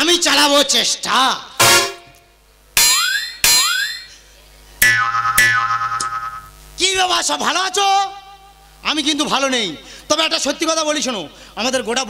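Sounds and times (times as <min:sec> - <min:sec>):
comic boing sound effect: 0:04.8 - 0:06.4.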